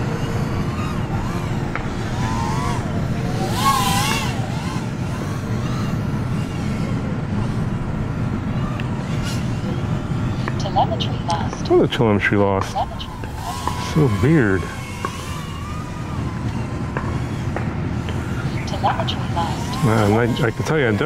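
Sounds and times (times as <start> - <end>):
drone motors whining: 0.0 - 21.0.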